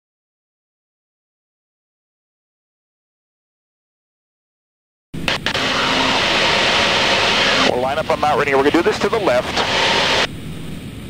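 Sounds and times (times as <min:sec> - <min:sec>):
airplane engine and airflow: 0:05.2 - 0:11.0
man speaking: 0:07.7 - 0:09.7.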